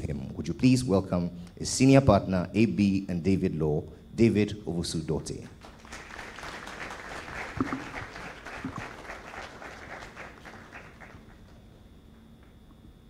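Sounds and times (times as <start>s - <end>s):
audience applauding: 5.6s - 11.6s.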